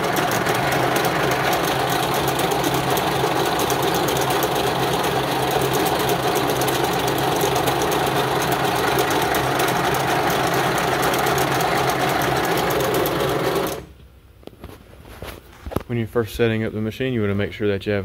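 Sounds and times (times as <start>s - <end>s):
braiding machine clatter: 0.0s - 13.8s
mechanical hum: 0.0s - 18.0s.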